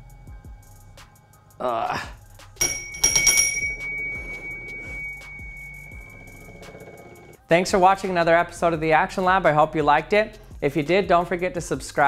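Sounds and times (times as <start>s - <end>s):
metallic bell-like ringing tone: 2.6s - 7.4s.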